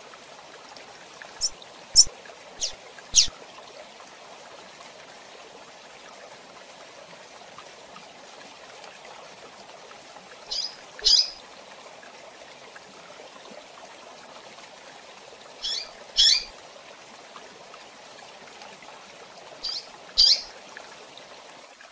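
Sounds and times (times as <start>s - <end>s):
bird calling with high chirps: 1.4s - 3.3s, 10.5s - 11.4s, 15.6s - 16.5s, 19.6s - 20.5s.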